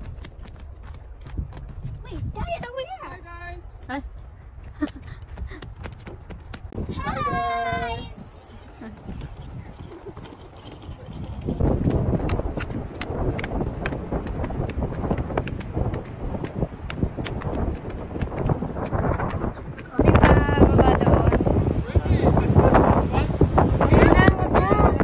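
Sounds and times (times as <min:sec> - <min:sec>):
footsteps on wooden planks: 0:00.0 - 0:03.0, 0:03.8 - 0:20.2
wind buffeting microphone: 0:00.0 - 0:25.0.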